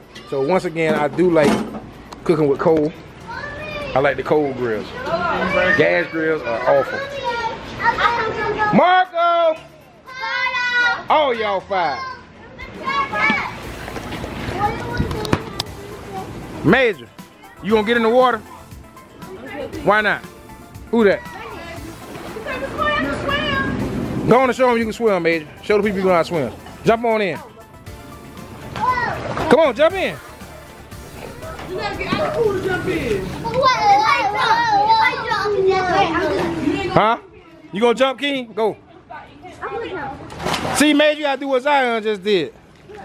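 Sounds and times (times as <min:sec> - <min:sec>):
children shouting and playing: 0:00.0 - 0:01.4, 0:02.8 - 0:41.6
child's raised voice: 0:03.3 - 0:04.0, 0:05.0 - 0:08.8, 0:10.0 - 0:11.1, 0:12.0 - 0:13.6, 0:14.5 - 0:16.4, 0:22.4 - 0:23.8, 0:28.7 - 0:29.3, 0:31.3 - 0:37.0.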